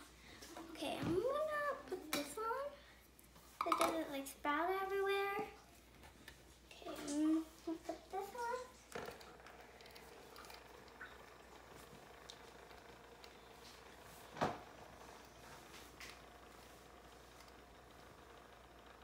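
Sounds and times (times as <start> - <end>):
faint steady hum: 0.0 - 19.0
milk frother jug clicks and knocks: 3.6 - 4.0.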